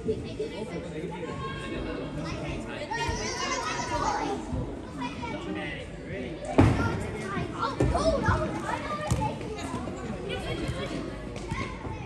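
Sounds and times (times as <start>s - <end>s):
voices calling out and chattering: 0.0s - 12.0s.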